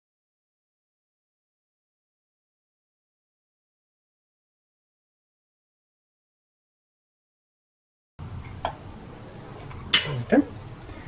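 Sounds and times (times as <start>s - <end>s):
faint background noise: 8.2s - 11.0s.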